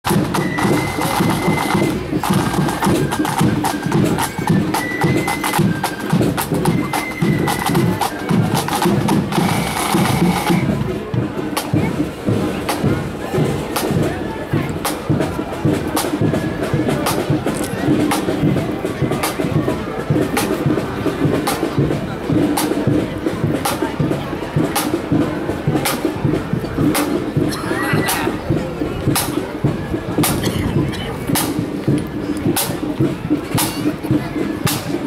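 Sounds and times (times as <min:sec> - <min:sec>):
side drums beating: 0:00.0 - 0:35.0
flute band playing: 0:00.1 - 0:35.0.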